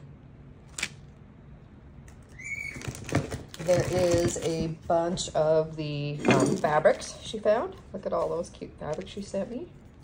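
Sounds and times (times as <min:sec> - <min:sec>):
bird whistling: 0:02.3 - 0:02.8.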